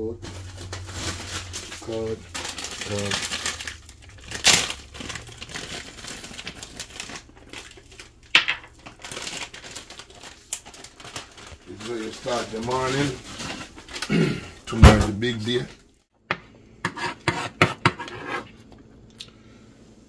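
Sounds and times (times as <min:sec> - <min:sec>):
rustling and knocks of containers: 0:11.7 - 0:15.7.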